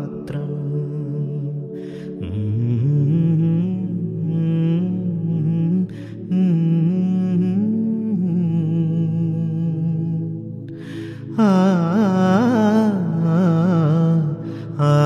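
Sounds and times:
breath: 0:01.8 - 0:02.2, 0:10.7 - 0:11.4, 0:14.4 - 0:14.8.

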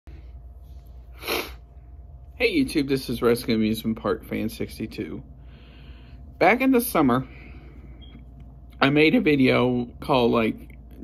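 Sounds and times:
steady low hum: 0:00.1 - 0:11.0
person breathy burst: 0:01.1 - 0:01.6.

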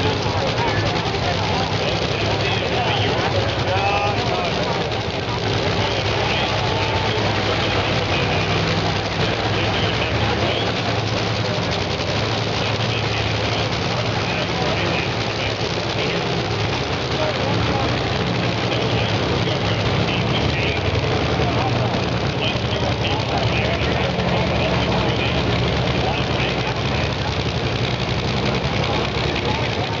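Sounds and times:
engine idling: 0:00.0 - 0:30.0
indistinct voices: 0:00.0 - 0:30.0.

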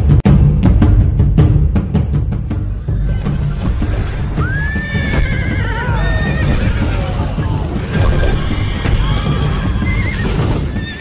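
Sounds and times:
dramatic music with heavy drumming: 0:00.0 - 0:11.0.

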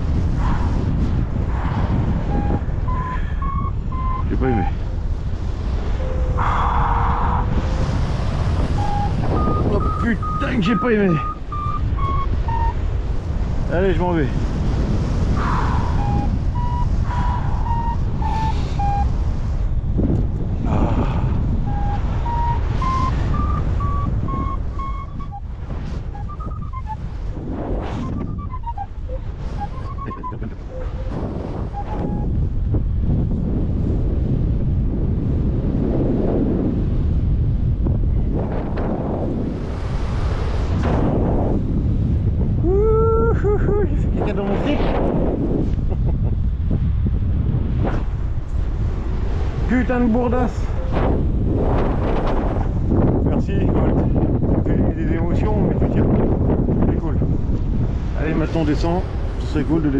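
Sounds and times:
wind noise on microphone: 0:00.0 - 0:59.9
variometer beeping: 0:02.2 - 0:04.8, 0:05.9 - 0:06.7, 0:08.6 - 0:13.0, 0:15.4 - 0:19.2, 0:21.6 - 0:27.2, 0:27.9 - 0:32.4.

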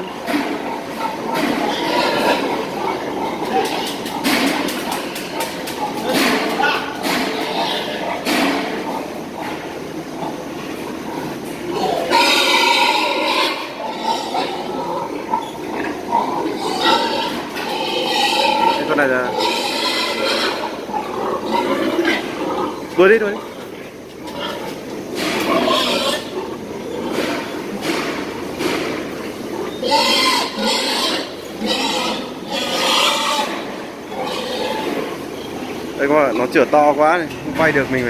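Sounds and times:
pigs grunting and squealing: 0:00.0 - 0:38.0.

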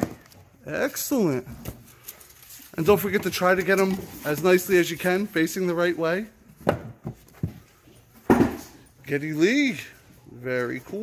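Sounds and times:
plastic rustle: 0:01.8 - 0:05.6.

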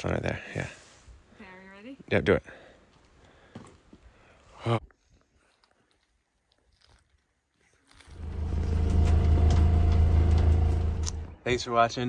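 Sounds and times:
boat engine running: 0:08.2 - 0:11.4.

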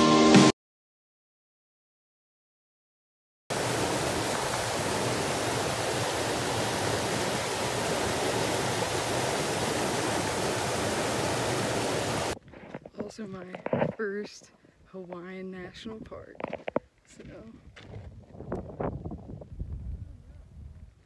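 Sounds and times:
stream rushing over boulders: 0:03.5 - 0:12.4.

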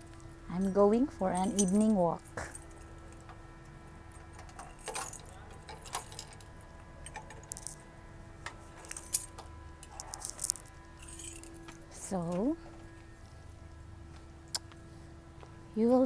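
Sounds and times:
jingling and rustling: 0:00.6 - 0:03.2, 0:04.1 - 0:07.8, 0:08.6 - 0:12.6.

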